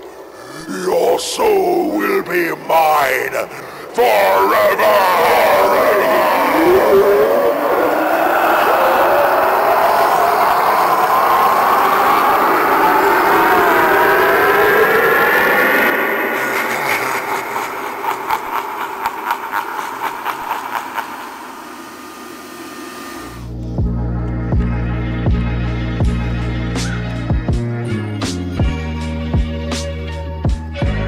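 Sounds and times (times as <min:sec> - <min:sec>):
eerie swirling tone rising: 0:00.0 - 0:27.3
rapid pulses: 0:19.7 - 0:24.0
music with throbbing beat: 0:23.4 - 0:29.9.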